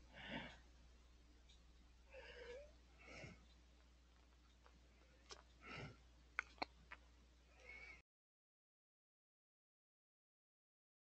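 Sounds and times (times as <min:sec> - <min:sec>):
steady low hum: 0:00.0 - 0:08.0.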